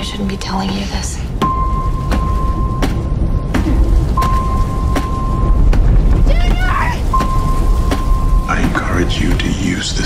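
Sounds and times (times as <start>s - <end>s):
low rumble with storm-like hiss: 0.0s - 10.0s.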